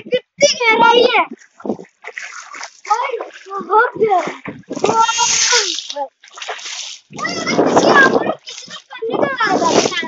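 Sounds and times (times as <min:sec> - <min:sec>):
footsteps splashing in shallow water: 0:01.3 - 0:10.0
person speaking: 0:02.9 - 0:06.2, 0:07.2 - 0:10.0.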